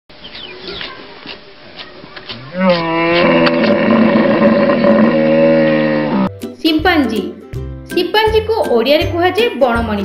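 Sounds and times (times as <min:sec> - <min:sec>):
hippopotamus bellowing: 0:02.3 - 0:06.3.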